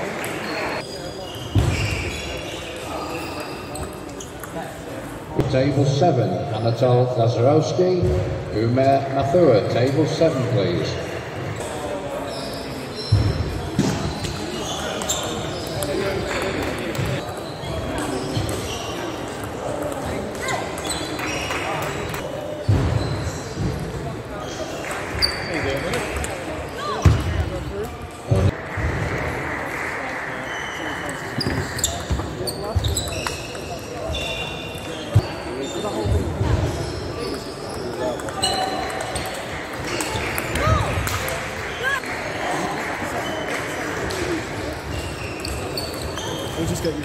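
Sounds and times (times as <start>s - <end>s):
voices in sports hall: 0.0s - 47.0s.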